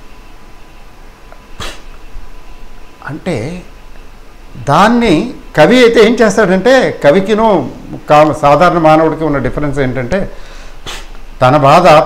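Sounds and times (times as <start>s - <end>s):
sharp hissy breath: 1.6s - 2.0s, 10.4s - 11.3s.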